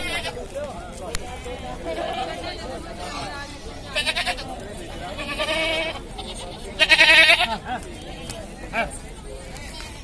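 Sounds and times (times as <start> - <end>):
goats bleating: 0.0 - 0.5, 3.9 - 7.6.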